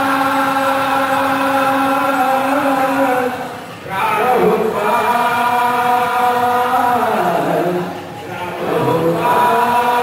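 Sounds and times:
devotional chanting: 0.0s - 10.0s.

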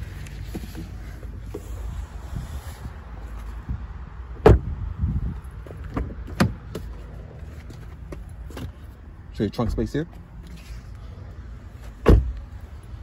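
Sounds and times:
car door shutting: 4.4s - 4.8s, 5.6s - 6.9s, 12.0s - 12.4s.

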